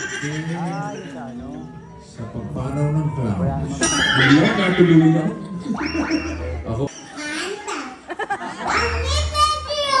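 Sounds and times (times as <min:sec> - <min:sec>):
voices through handheld microphone: 0:00.0 - 0:10.0.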